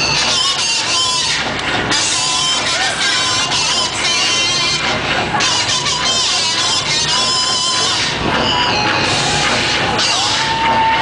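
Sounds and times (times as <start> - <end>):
crowd cheering and screaming: 2.4 - 11.0.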